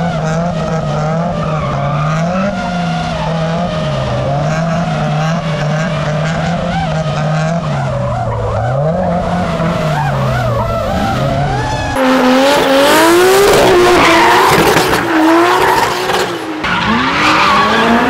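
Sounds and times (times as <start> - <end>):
car engine revving: 0.0 - 18.0.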